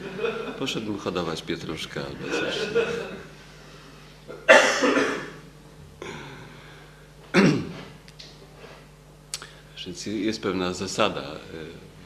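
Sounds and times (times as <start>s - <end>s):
person coughing: 4.3s - 5.4s, 7.3s - 7.9s.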